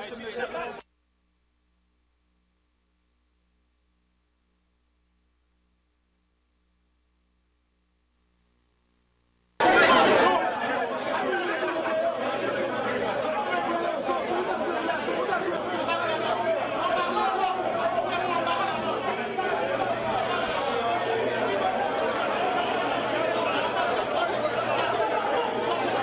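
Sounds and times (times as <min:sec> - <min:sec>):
crowd chatter: 0:09.6 - 0:26.0.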